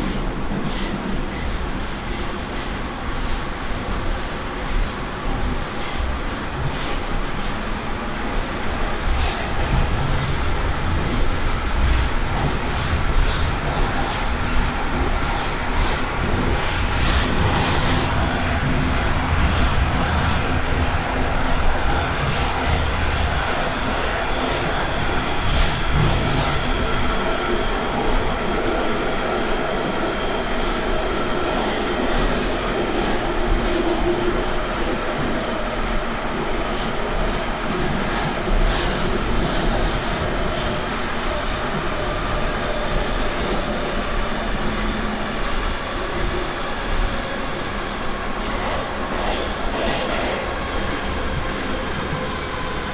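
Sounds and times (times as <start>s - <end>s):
train wheels rumbling on rail: 0.0s - 52.9s.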